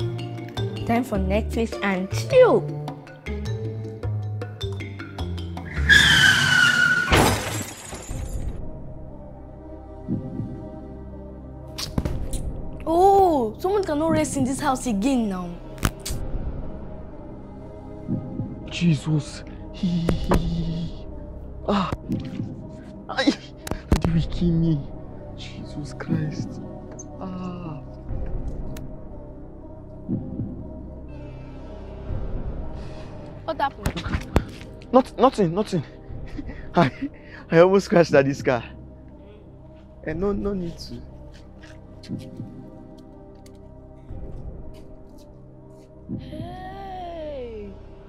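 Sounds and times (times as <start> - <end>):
background music: 0.0 - 48.0
car tyres screeching: 5.7 - 7.2
crash: 6.1 - 8.6
heartbeat thump: 18.1 - 18.6, 30.1 - 30.7, 42.1 - 42.7.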